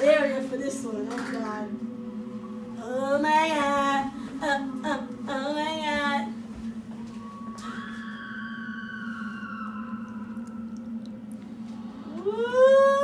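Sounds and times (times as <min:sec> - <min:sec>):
steady low hum: 0:00.0 - 0:13.0
woman rising ooh: 0:06.6 - 0:13.0
woman squealing: 0:07.5 - 0:10.8.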